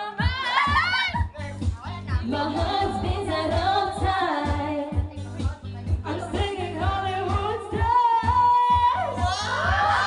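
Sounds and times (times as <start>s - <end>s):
woman singing into microphone: 0.0s - 1.2s, 2.2s - 10.0s
backing track with steady beat: 0.0s - 10.0s.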